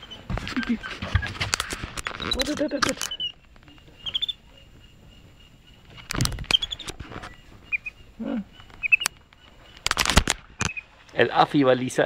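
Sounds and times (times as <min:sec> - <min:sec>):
monkey chirping: 0:00.0 - 0:01.3, 0:02.0 - 0:09.8, 0:10.5 - 0:11.0.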